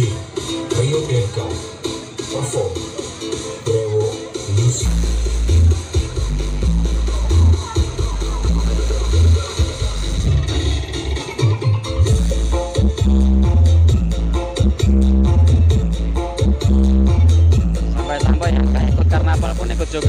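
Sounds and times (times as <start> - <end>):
loud dance music with heavy bass: 0.0 - 20.0.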